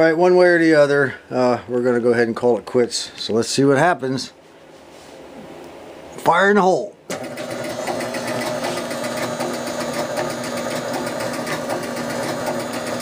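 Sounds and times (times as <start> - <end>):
pinball machine relay buzzing: 7.1 - 13.0.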